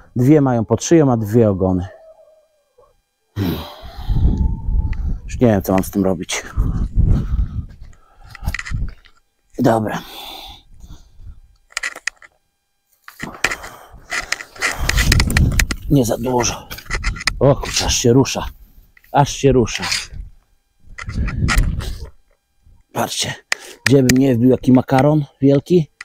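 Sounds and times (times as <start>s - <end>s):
hens calling: 0.0s - 5.6s.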